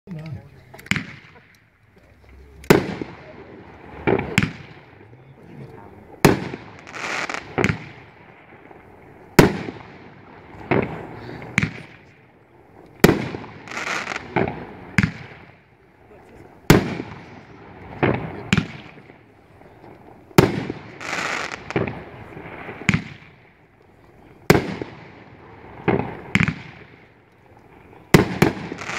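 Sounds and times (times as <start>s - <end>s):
firework bangs: 0.7s - 28.9s
hissing crackle of bursting stars: 6.0s - 28.9s.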